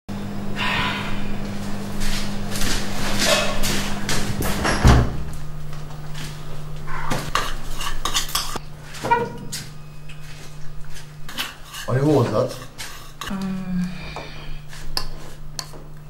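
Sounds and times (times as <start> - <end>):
steady low hum: 0.1 - 16.0.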